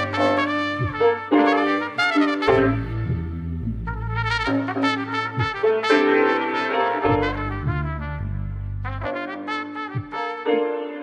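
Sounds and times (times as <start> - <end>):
instrumental music with brass melody: 0.0 - 11.0.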